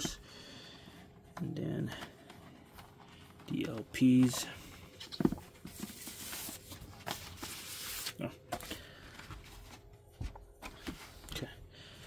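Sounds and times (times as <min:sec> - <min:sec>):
records handled with light taps: 0:01.3 - 0:05.9.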